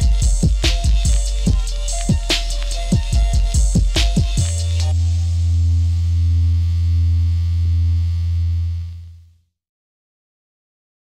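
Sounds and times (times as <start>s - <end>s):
deep electronic bass note: 0.0s - 9.3s.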